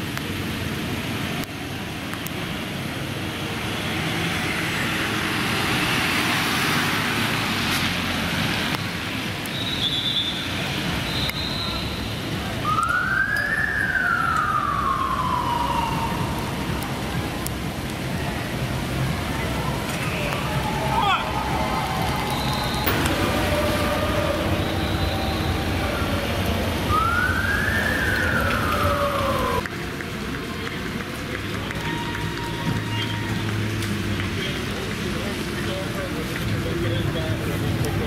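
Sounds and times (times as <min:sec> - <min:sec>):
crowd voices: 0:00.0 - 0:38.0
street noise: 0:00.0 - 0:38.0
emergency vehicle siren wailing: 0:12.6 - 0:17.5, 0:19.6 - 0:29.7.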